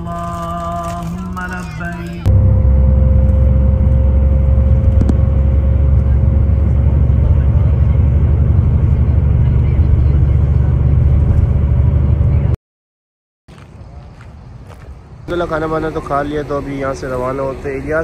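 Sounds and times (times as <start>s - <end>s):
bus engine and road rumble: 0.0s - 12.6s, 13.5s - 18.0s.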